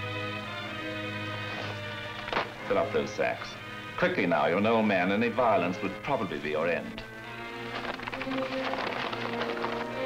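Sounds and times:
music of long held chords: 0.0 - 10.0.

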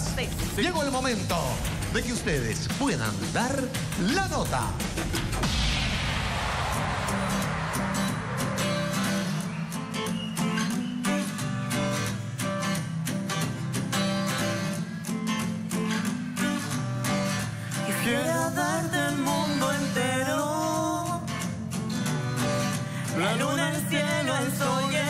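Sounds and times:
steady beat: 0.0 - 11.9
falling whoosh: 5.2 - 11.1
strummed guitar chords: 6.7 - 25.0.

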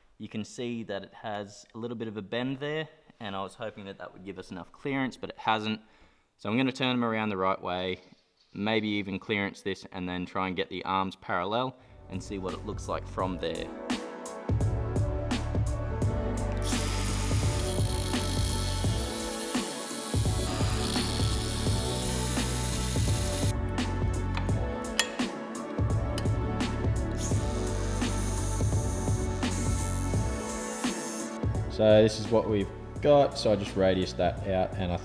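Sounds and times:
background music: 10.2 - 35.0
power tool cutting steel: 16.6 - 23.5, 27.6 - 31.4.

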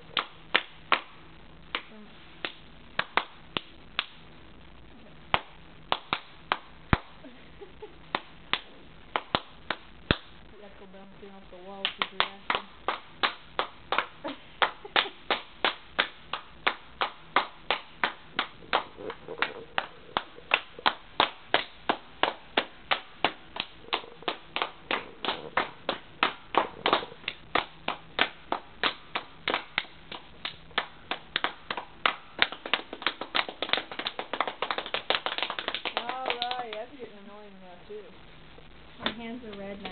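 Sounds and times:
hands clapping: 0.1 - 4.2, 5.3 - 7.2, 8.1 - 10.3, 11.8 - 36.9, 39.0 - 39.9.

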